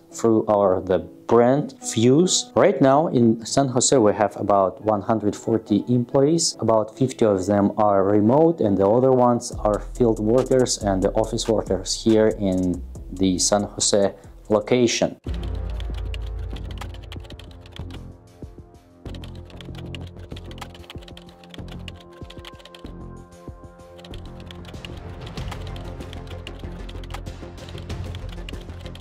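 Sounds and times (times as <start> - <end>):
background music with bass line: 9.6 - 14.7, 15.3 - 29.0
keyboard typing clicks: 15.4 - 18.0, 19.1 - 22.9, 24.0 - 29.0.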